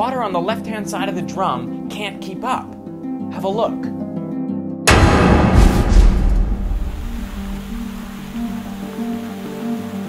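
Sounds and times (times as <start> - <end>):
steel drum imploding: 4.9 - 8.9.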